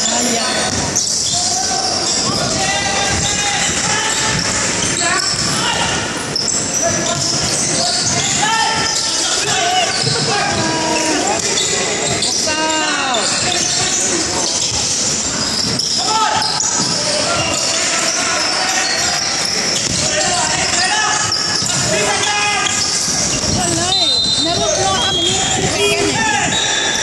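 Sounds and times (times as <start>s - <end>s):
echoing voices in a hall: 0.0s - 27.0s.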